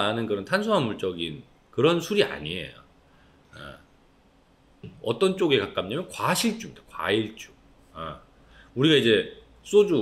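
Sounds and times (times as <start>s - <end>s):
man talking: 0.0s - 2.9s, 3.5s - 3.9s, 4.8s - 10.0s
man breathing in: 8.4s - 8.8s.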